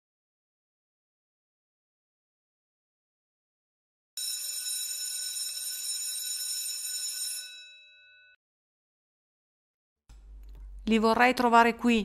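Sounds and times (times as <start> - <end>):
electric school bell ringing: 4.2 - 8.4.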